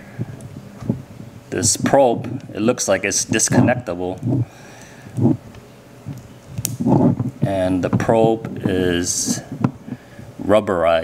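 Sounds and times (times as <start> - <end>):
person speaking: 1.5 - 4.5, 6.8 - 11.0
cable being handled: 4.1 - 10.0.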